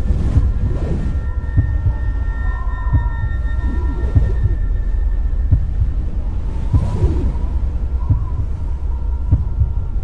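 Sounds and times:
heartbeat thumps: 0:00.0 - 0:10.0
low drone: 0:00.0 - 0:10.0.

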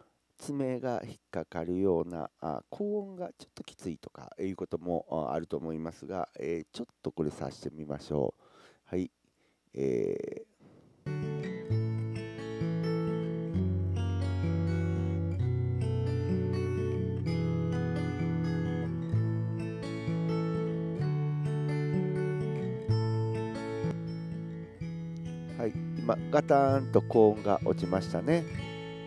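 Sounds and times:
acoustic guitar chords: 0:10.7 - 0:29.0.

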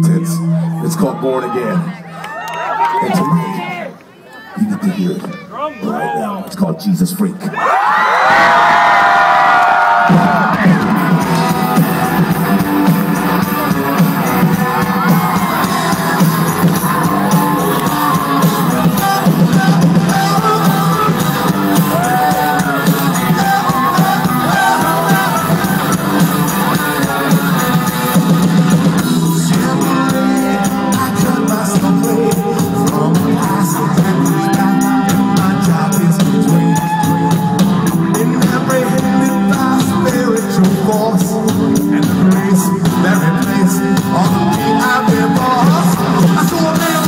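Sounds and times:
live rock band playing: 0:09.2 - 0:47.0
person singing: 0:10.1 - 0:47.0.

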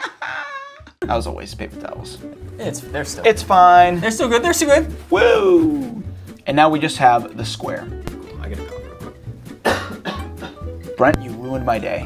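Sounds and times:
guitar music: 0:01.0 - 0:12.0
man coughing: 0:09.6 - 0:10.6.

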